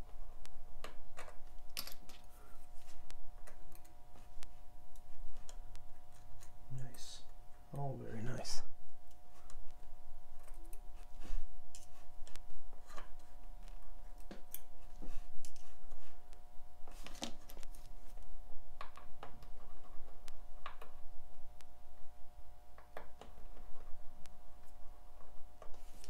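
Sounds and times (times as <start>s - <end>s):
faint background hum: 0.0s - 26.0s.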